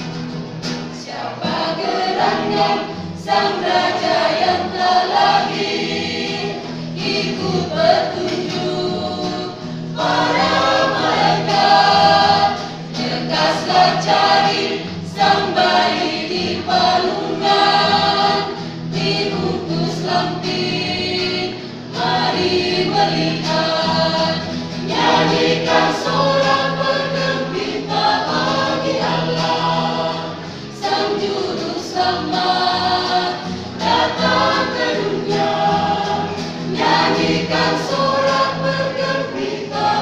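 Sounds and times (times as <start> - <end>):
choir singing gospel: 0.0 - 40.0.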